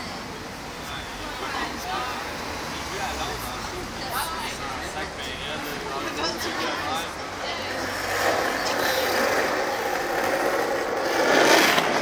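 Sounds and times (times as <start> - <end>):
people talking: 0.0 - 10.4
passing traffic: 0.0 - 12.0.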